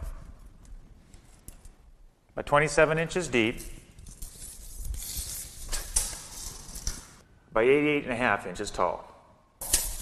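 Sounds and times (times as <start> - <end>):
tape measure scraping on wood: 3.5 - 7.1.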